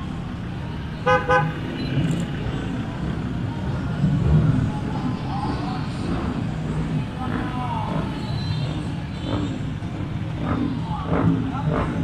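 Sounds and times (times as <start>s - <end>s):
vehicle engines driving slowly past: 0.0s - 12.0s.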